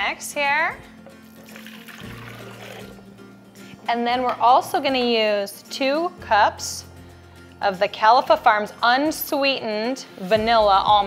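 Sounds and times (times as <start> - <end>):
quiet background music: 0.0 - 11.0
water pouring into container: 1.3 - 3.0.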